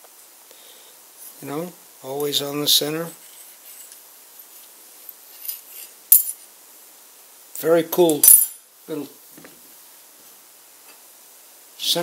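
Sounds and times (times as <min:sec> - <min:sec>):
light metallic handling sounds: 0:03.1 - 0:06.5.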